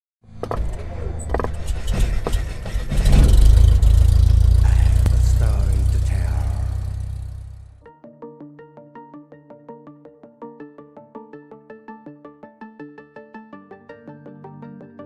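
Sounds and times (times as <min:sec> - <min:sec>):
loud deep rumble: 0:00.8 - 0:07.8.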